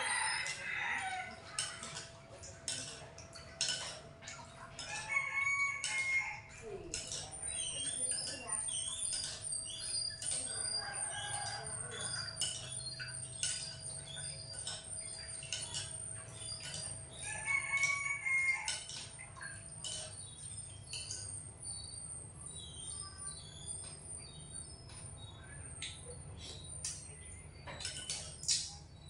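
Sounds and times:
rooster crowing: 0:00.0 - 0:01.4, 0:04.9 - 0:06.5, 0:10.8 - 0:12.2, 0:17.2 - 0:18.9.

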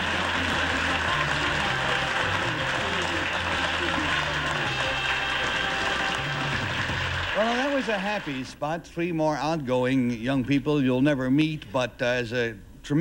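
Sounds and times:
audience applauding: 0:00.0 - 0:08.6.

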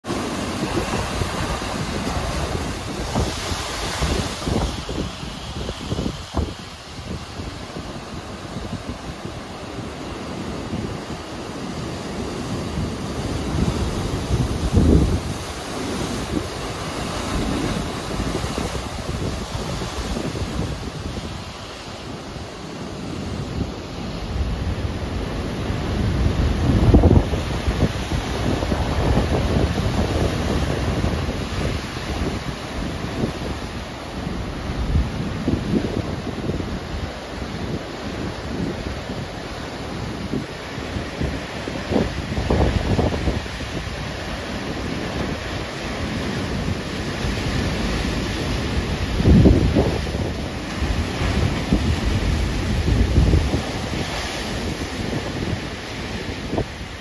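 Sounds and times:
surf crashing on rocks: 0:00.0 - 0:57.0
wind buffeting microphone: 0:00.0 - 0:57.0.

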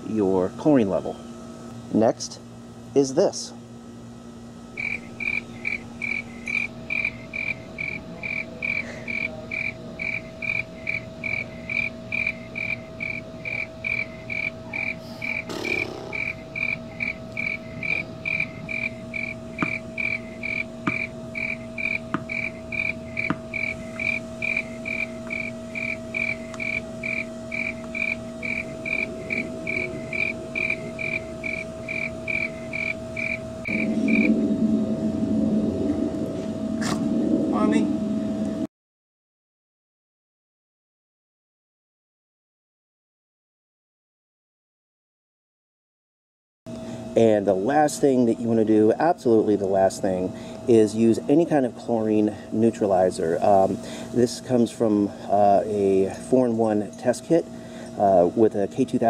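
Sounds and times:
faint steady hum: 0:00.0 - 0:38.7, 0:46.7 - 0:59.0
cricket chirping: 0:04.8 - 0:34.9.

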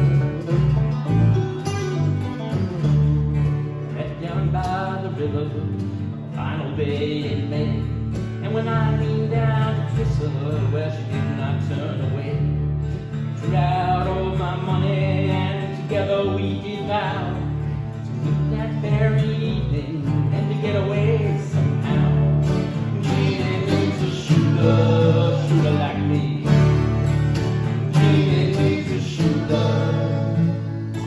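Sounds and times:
acoustic and electric guitars: 0:00.0 - 0:31.0
low bass line: 0:00.0 - 0:31.0.

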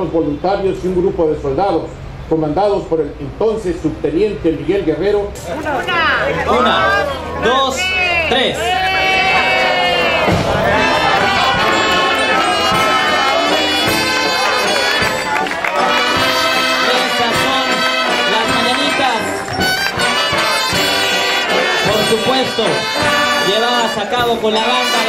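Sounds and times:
crowd voices: 0:04.6 - 0:25.0
brass band playing: 0:05.7 - 0:25.0.

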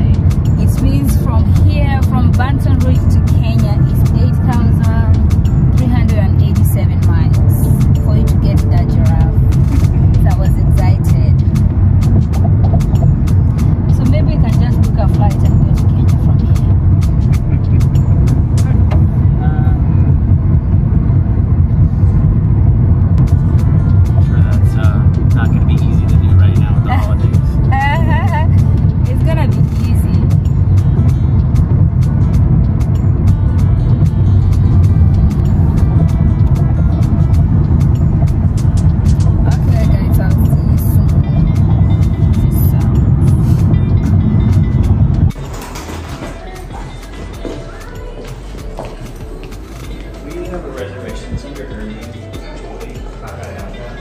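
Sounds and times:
car cabin road and engine rumble: 0:00.0 - 0:54.0.

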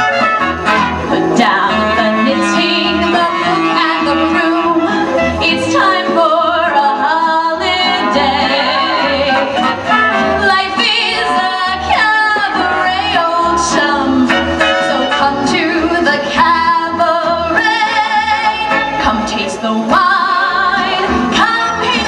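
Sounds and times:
woman singing into microphone: 0:01.3 - 0:22.0.

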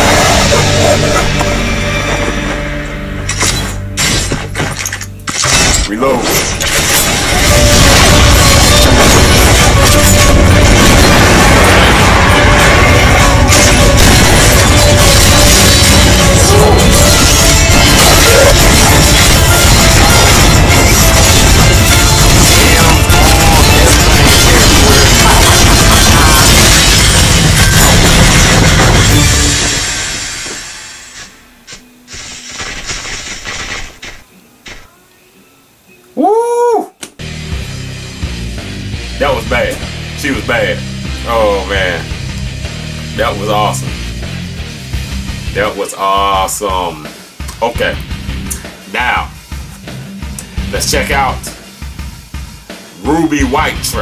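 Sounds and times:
trailer music: 0:00.0 - 0:31.5, 0:37.2 - 0:45.7, 0:46.4 - 0:54.0
crashing shattering impacts: 0:03.3 - 0:31.2.

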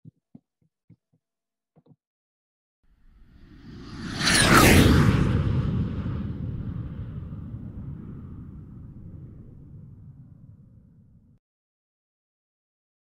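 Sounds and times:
low rumble: 0:02.9 - 0:11.4
whoosh with falling whistle: 0:03.4 - 0:09.5.

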